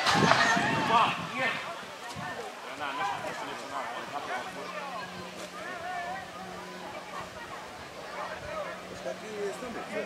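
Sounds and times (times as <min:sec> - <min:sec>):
spectators talking: 0:00.0 - 0:10.0.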